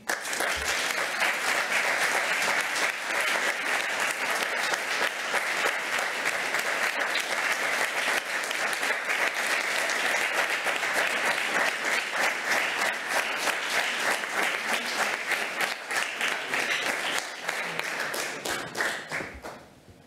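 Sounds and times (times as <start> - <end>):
audience clapping: 0.0 - 19.7.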